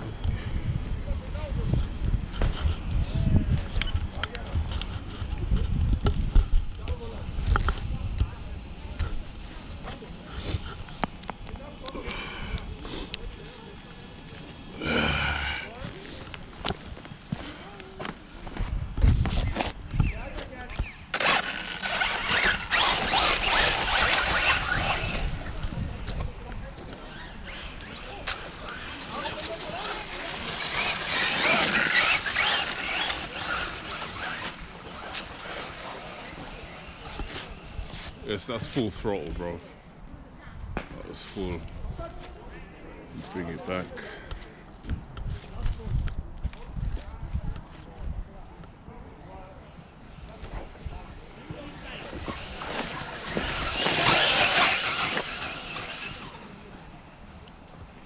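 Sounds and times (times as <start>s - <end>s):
rc truck motor and tyres: 0.0s - 39.7s, 49.7s - 58.0s.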